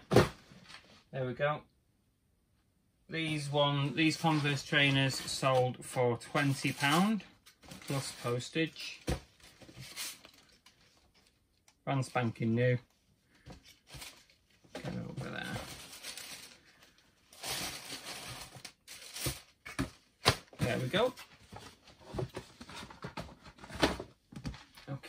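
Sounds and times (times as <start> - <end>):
tissue paper rustling: 15.4 - 19.5.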